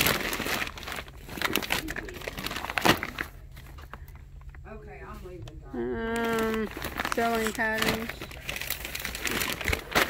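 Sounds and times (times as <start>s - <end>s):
plastic bags crinkling: 0.0s - 4.6s, 6.0s - 10.0s.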